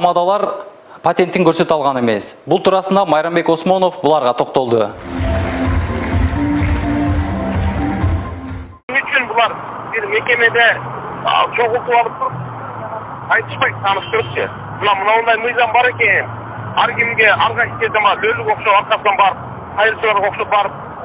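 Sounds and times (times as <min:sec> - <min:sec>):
man speaking over telephone: 0:08.9 - 0:20.8.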